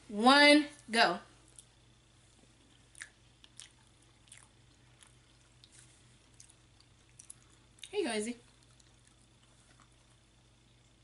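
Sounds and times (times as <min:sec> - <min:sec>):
low steady hum: 0:00.0 - 0:11.0
faint chewing: 0:01.4 - 0:11.0.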